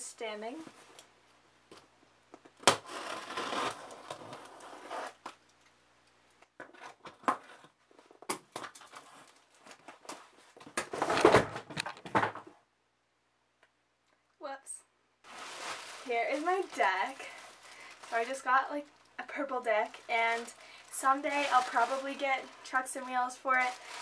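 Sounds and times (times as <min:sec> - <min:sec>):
cardboard ripping: 0:02.6 - 0:05.2, 0:15.3 - 0:18.4, 0:19.9 - 0:24.0
cardboard scrapes and crinkles: 0:02.8 - 0:05.2, 0:15.3 - 0:18.8, 0:19.8 - 0:24.0.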